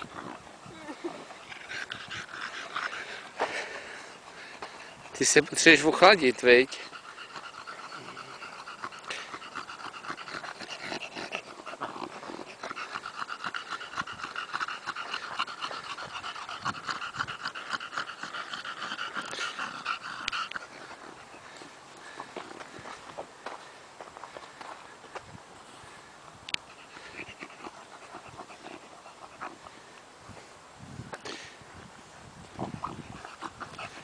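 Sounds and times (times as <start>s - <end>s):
dog panting: 0.0s - 25.0s, 26.6s - 30.0s, 32.5s - 34.0s.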